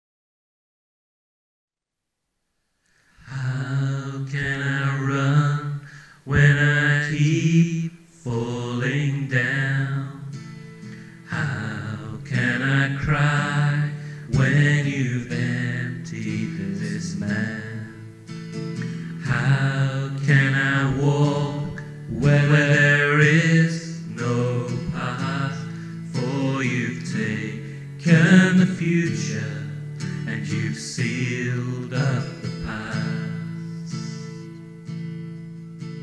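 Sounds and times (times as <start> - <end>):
man singing wordless chant: 3.2 - 10.3, 11.3 - 18.0, 19.2 - 34.4.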